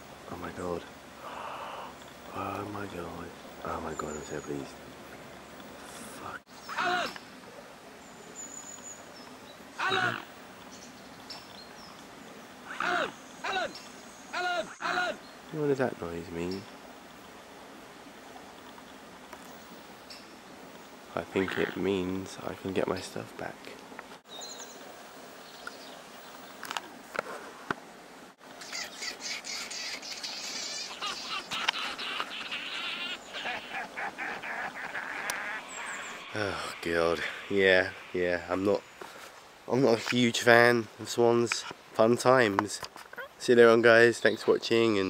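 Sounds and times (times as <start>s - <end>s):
songbirds chirping and singing: 1.4s - 5.7s, 28.6s - 40.3s
man shouting loudly: 6.7s - 7.2s, 9.8s - 10.2s, 12.8s - 13.8s, 14.4s - 15.2s
high bird chirps: 34.8s - 38.2s.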